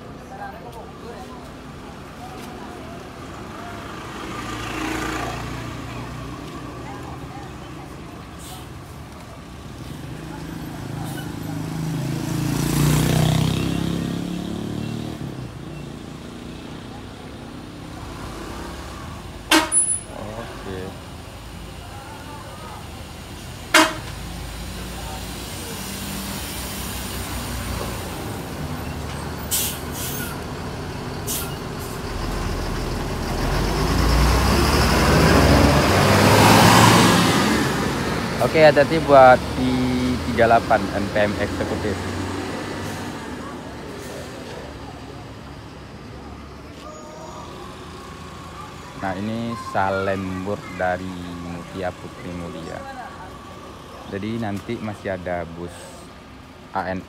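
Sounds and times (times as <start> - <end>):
diesel bus engine passing: 0.0 - 57.0
smaller vehicle passing: 0.8 - 57.0
short sharp horn blasts: 19.5 - 20.1, 23.7 - 24.2.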